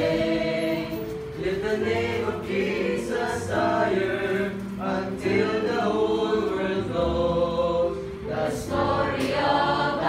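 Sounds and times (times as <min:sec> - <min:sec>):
mixed choir singing a hymn: 0:00.0 - 0:10.0.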